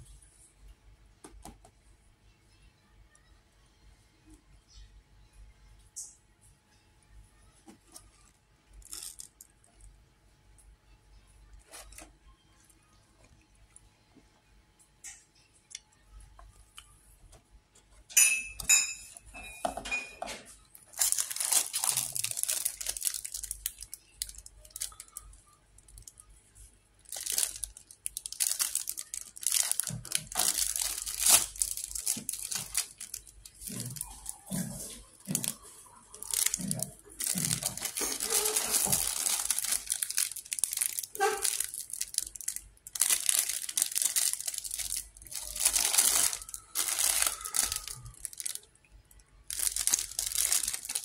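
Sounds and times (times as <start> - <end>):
plastic wrappers crinkling: 7.9 - 9.7, 20.6 - 51.0.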